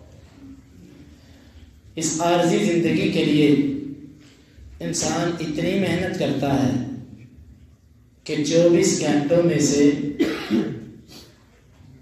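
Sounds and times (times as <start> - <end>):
man coughing: 10.0 - 11.3.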